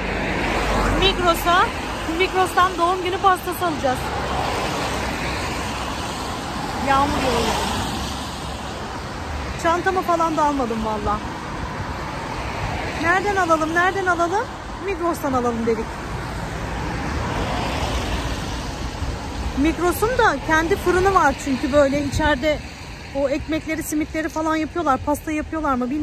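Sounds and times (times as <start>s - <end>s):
cars passing on wet road: 0.0s - 26.0s.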